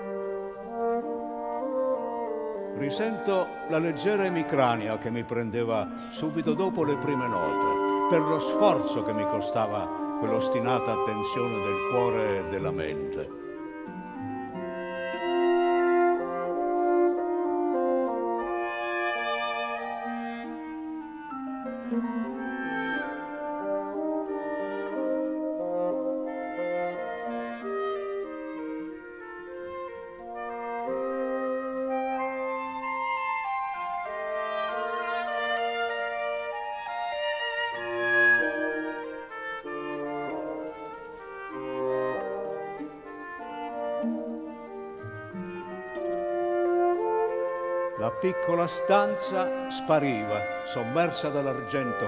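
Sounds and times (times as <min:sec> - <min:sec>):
orchestra playing held notes: 0:00.0 - 0:52.0.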